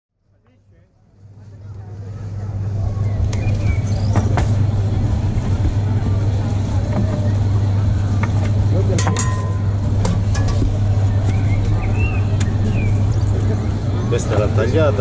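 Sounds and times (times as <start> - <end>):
market crowd chatter: 0.1 - 15.0
low motor hum: 0.2 - 15.0.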